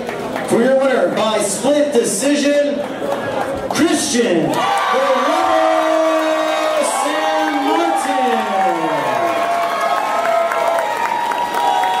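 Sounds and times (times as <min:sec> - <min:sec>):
crowd cheering: 0:04.4 - 0:12.0.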